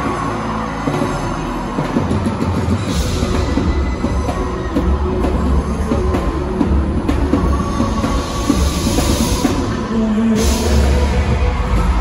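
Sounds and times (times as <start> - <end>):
live music over sound system: 0.0 - 12.0.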